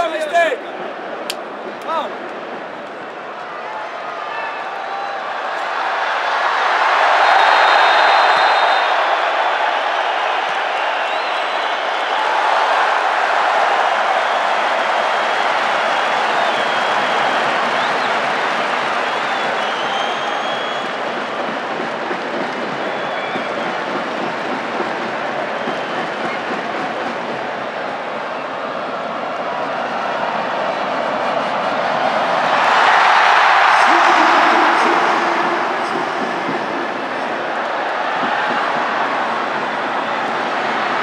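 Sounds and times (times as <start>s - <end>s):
stadium crowd din: 0.0s - 41.0s.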